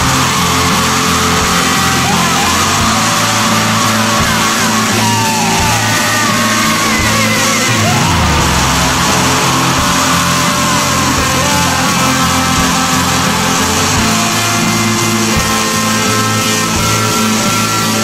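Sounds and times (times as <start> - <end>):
loud shoegaze rock music: 0.0 - 18.0
wavering gliding high notes: 0.0 - 18.0.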